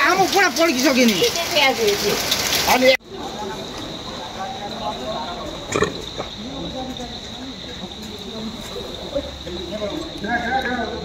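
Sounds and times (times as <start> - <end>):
insects chirring: 0.0 - 11.0
people talking: 0.0 - 11.0.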